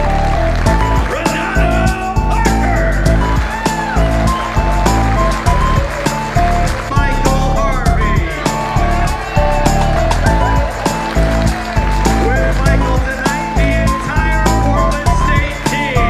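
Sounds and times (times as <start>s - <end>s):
upbeat music with heavy bass: 0.0s - 16.0s.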